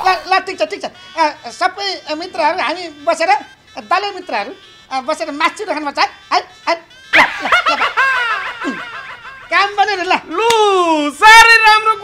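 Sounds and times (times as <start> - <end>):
man laughing: 7.1 - 10.0.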